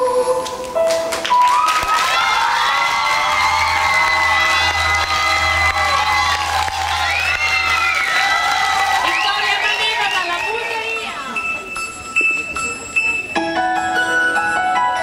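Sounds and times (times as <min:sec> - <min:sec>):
audience cheering and applause: 0:01.2 - 0:11.1.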